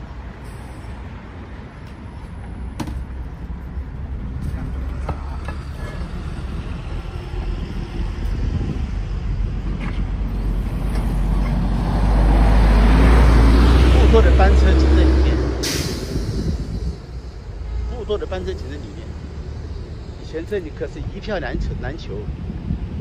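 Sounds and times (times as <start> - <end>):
heavy vehicle engine rumble: 0.0 - 23.0
street traffic: 0.0 - 23.0.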